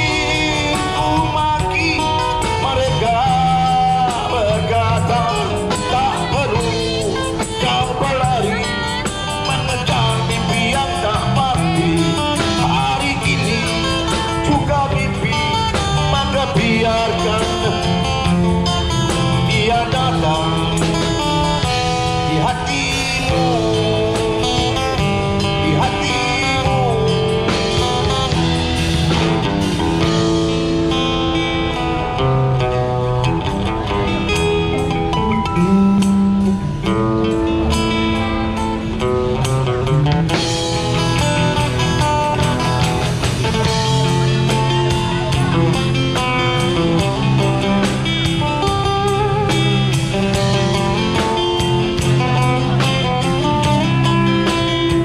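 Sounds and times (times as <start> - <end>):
street band playing rock ballad: 0.0 - 55.0.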